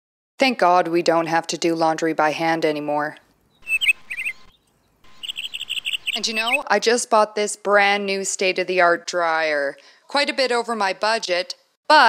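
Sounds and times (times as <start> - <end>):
small birds chirping: 3.2 - 6.7.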